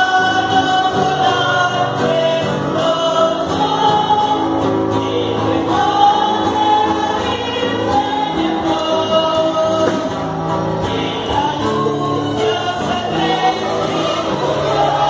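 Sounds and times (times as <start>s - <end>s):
group singing a hymn: 0.0s - 15.0s.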